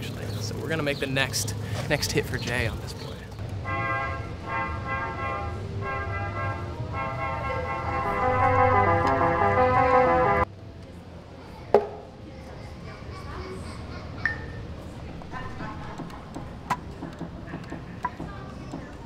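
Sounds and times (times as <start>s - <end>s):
electronic keyboard tune: 3.6s - 10.5s.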